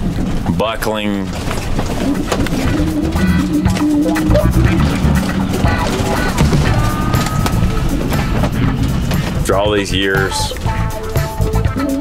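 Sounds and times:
cabinets rattling and banging: 0.0s - 10.8s
road rumble inside trailer: 0.0s - 12.0s
music: 2.6s - 12.0s.

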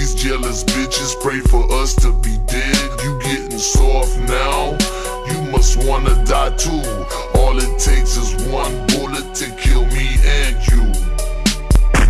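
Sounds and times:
rap vocal: 0.0s - 12.0s
slowed hip hop track: 0.0s - 12.0s
deep bass hits: 10.2s - 12.0s.

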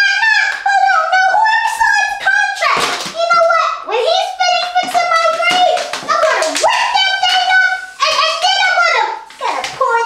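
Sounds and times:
sharp taps or claps: 4.6s - 8.5s.

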